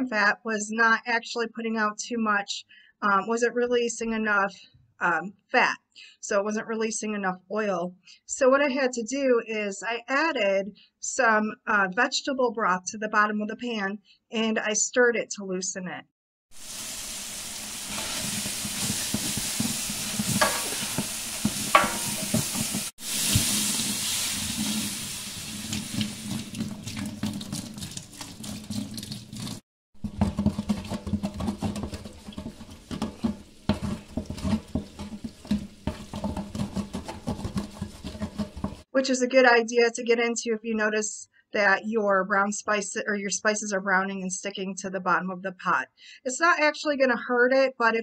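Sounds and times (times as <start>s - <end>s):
vegetables sizzling in fat: 16.5s - 26.6s
spoon scraping a pot: 17.9s - 22.9s, 30.0s - 38.9s.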